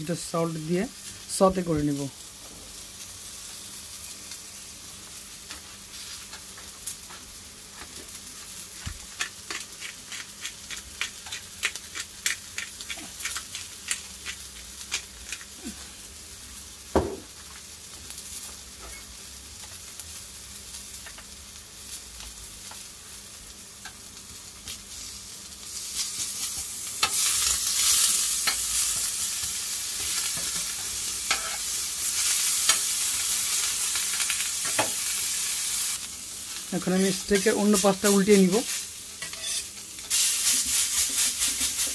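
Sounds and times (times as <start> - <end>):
food sizzling on griddle: 0.0 - 41.9
knock: 17.0 - 17.2.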